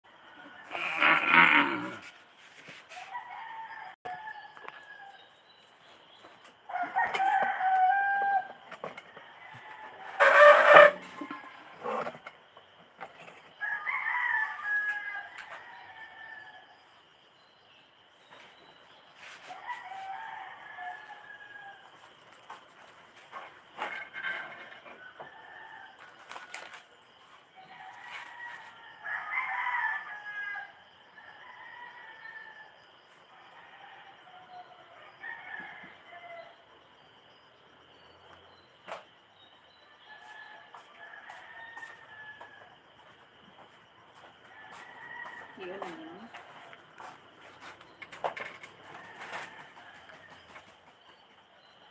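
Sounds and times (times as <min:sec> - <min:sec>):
roosters crowing: 0:00.1 - 0:05.3, 0:06.6 - 0:12.8, 0:13.5 - 0:17.0, 0:19.2 - 0:22.6, 0:23.3 - 0:36.7, 0:39.9 - 0:50.8.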